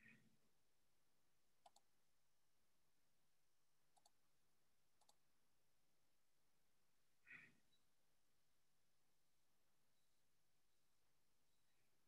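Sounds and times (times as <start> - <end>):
computer mouse clicks: 1.6 - 1.9, 3.9 - 4.2, 5.0 - 5.2.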